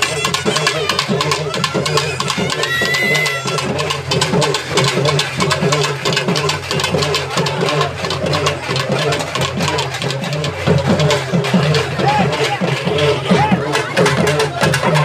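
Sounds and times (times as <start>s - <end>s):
crowd voices: 0.0s - 15.0s
drums beaten rapidly: 0.0s - 15.0s.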